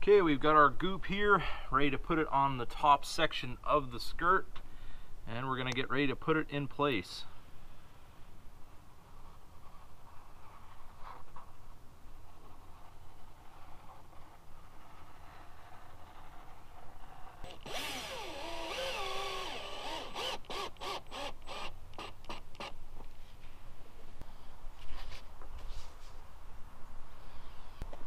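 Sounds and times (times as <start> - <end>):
power drill driving screws: 17.4 - 22.7.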